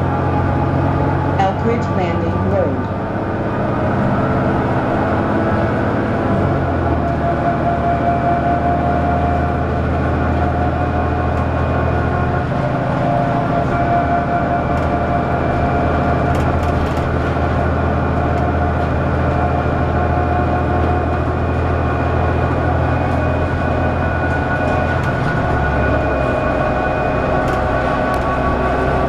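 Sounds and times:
bus engine drone: 0.0 - 29.0
thin whine: 0.0 - 29.0.

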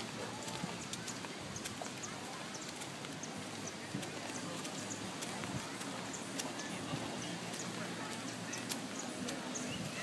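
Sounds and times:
distant chatter: 0.0 - 10.0.

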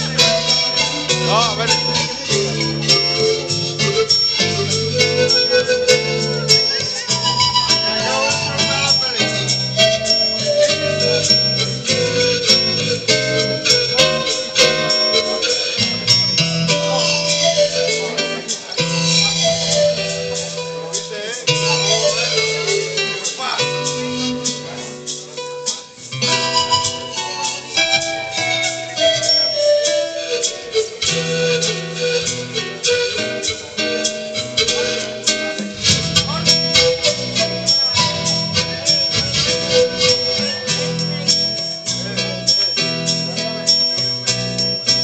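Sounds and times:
bass line: 0.0 - 20.9, 31.2 - 45.0
acoustic string instruments playing: 0.0 - 45.0
guitar: 0.0 - 45.0
sustained melody line: 0.0 - 45.0.

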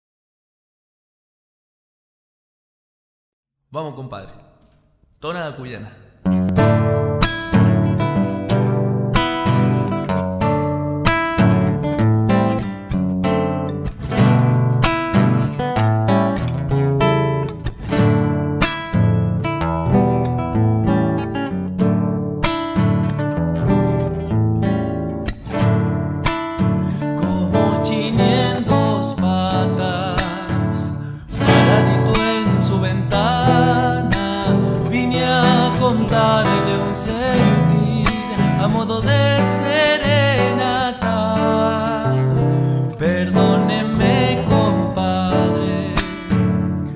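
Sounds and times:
nylon-string guitar playing: 6.2 - 46.9
man singing with vibrato: 26.9 - 46.4.

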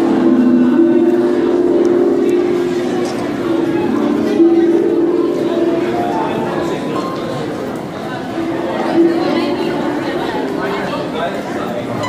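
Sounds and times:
harp notes plucked: 0.0 - 7.5, 8.4 - 10.9
people chattering: 0.0 - 12.0.

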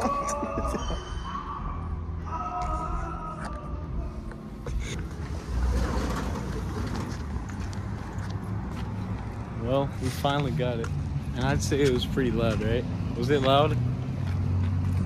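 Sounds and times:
faint traffic: 0.0 - 15.0
footsteps: 6.0 - 15.0.

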